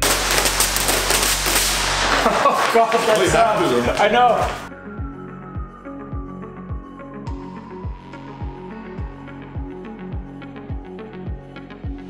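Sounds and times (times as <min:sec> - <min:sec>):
vinyl film crackling: 0:00.0 - 0:04.7.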